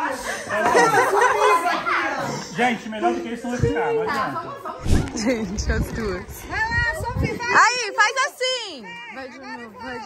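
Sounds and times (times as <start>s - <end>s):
women chattering excitedly: 3.6s - 10.0s.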